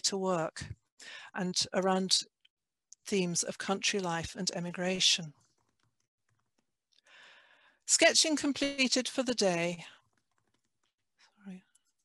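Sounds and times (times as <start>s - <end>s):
faint keyboard clicks: 5.4s - 7.0s, 9.9s - 11.0s.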